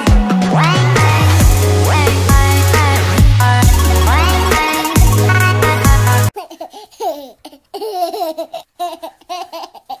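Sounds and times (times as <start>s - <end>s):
electronic dance music: 0.0s - 6.3s
baby giggling: 6.3s - 10.0s.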